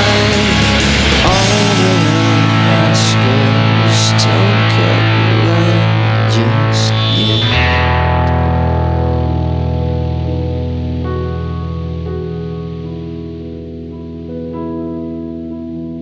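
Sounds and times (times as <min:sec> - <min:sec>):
bass note: 0:00.0 - 0:16.0
distorted electric guitar: 0:00.0 - 0:16.0.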